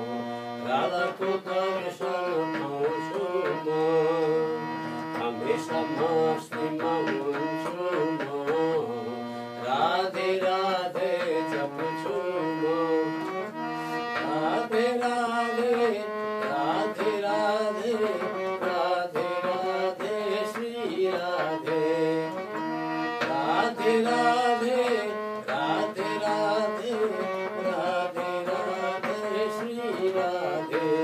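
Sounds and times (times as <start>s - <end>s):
harmonium chords: 0.0s - 31.0s
person singing: 0.0s - 31.0s.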